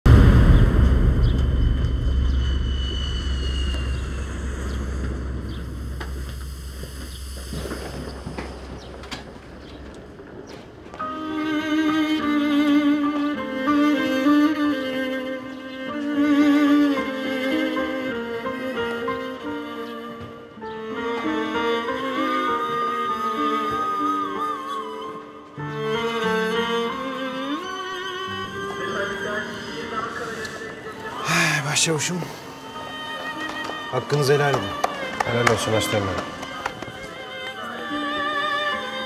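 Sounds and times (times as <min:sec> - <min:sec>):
deep rumble: 0:00.0 - 0:10.2
bowed strings music: 0:10.9 - 0:39.0.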